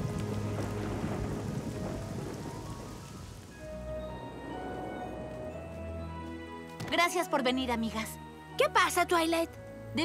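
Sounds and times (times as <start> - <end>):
rain shower: 0.0 - 10.0
soft background music: 0.0 - 10.0.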